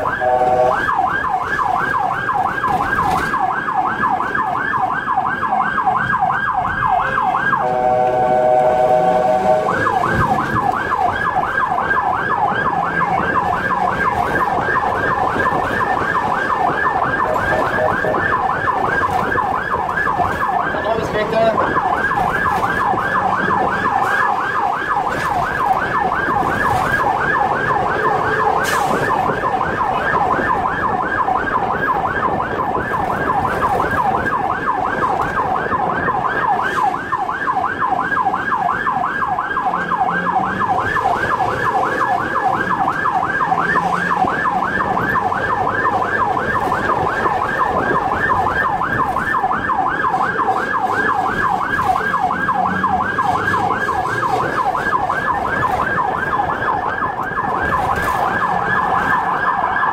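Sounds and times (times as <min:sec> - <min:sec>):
siren yelping: 0:00.0 - 0:59.9
steady blaring siren tone: 0:00.0 - 0:59.9.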